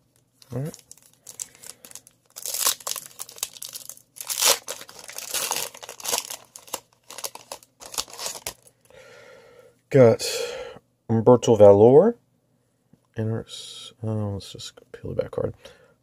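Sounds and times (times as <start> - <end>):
card pack wrapper tearing: 0.4 - 8.7.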